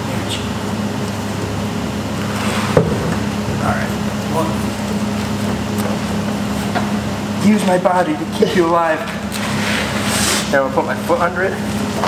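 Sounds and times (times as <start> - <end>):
fan hum: 0.0 - 12.0.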